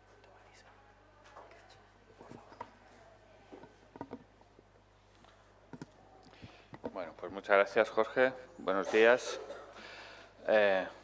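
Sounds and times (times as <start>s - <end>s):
man speaking: 6.9s - 9.6s.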